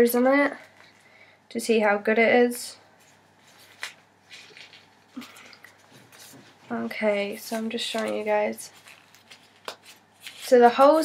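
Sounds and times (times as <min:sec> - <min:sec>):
fabric rustling: 0:03.0 - 0:10.6.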